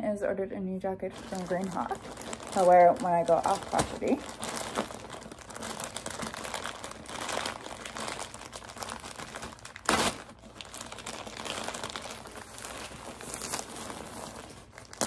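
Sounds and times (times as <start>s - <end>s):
plastic mailer bag crinkling: 1.0s - 15.0s.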